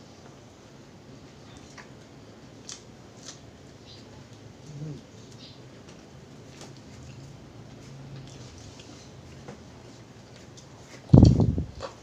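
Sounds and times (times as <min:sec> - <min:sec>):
crunchy chewing: 0:01.5 - 0:12.0.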